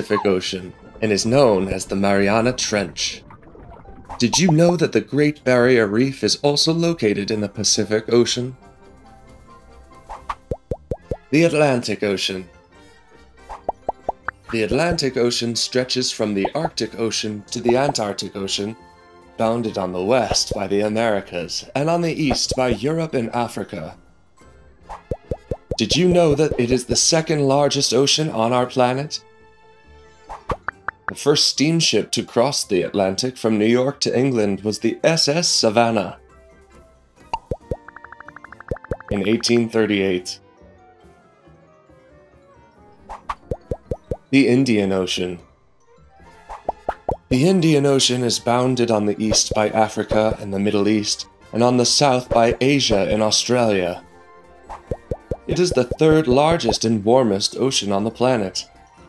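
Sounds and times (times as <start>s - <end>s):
cartoon plop bloops: 0.0s - 0.3s, 3.3s - 4.7s, 10.3s - 11.3s, 25.1s - 26.6s, 37.3s - 39.6s, 43.3s - 44.2s, 46.7s - 47.3s, 54.8s - 56.8s
cartoon rising bloops: 0.0s - 0.4s, 25.2s - 26.1s, 37.4s - 39.2s, 43.6s - 44.2s, 55.0s - 56.0s
soft background music: 0.0s - 59.0s
fast even ticks: 25.1s - 26.2s, 37.4s - 39.6s, 43.3s - 44.2s, 54.8s - 56.8s.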